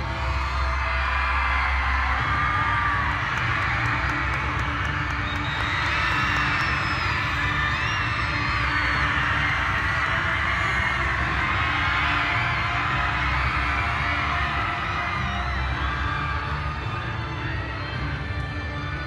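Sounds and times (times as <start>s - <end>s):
audience cheering: 0.0s - 18.1s
loud music with pulsing bass: 0.0s - 19.0s.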